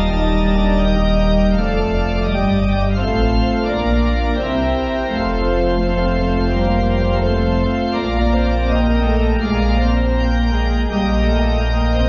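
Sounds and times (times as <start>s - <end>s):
organ playing slow held chords: 0.0s - 12.0s.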